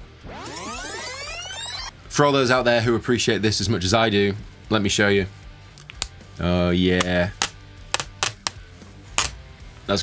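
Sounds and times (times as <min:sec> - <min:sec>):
plastic film peeling crackles: 0:07.4 - 0:08.6.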